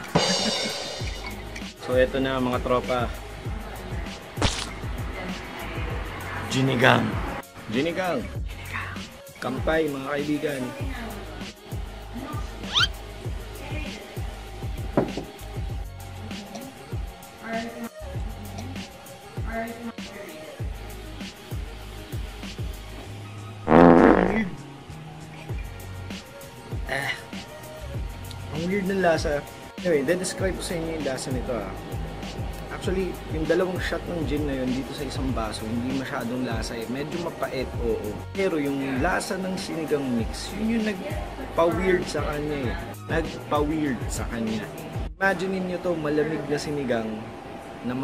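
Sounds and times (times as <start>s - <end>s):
background music with drum beat: 0.0s - 6.1s, 7.2s - 23.0s, 25.6s - 45.2s.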